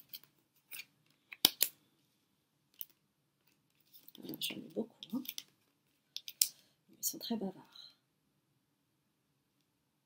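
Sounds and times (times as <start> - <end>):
cards clicking and snapping: 0.0 - 1.8.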